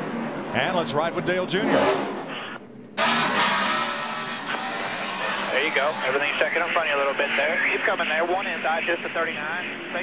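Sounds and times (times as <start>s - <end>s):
race car engine roaring: 0.0s - 10.0s.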